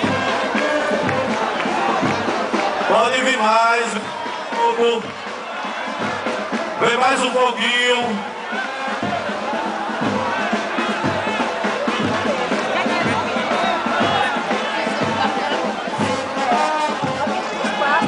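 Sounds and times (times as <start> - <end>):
crowd singing and cheering: 0.0 - 18.0
music with low thumping beat: 8.0 - 18.0.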